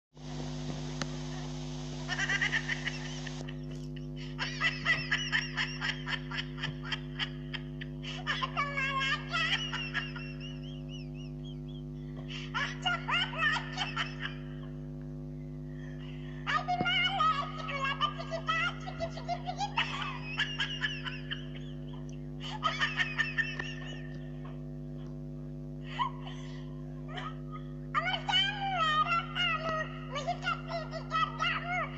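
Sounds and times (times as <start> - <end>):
low electrical hum: 0.2 - 31.9
man giggling: 1.3 - 14.7, 16.5 - 24.7
man snickering laughter: 2.0 - 14.8, 17.4 - 24.7.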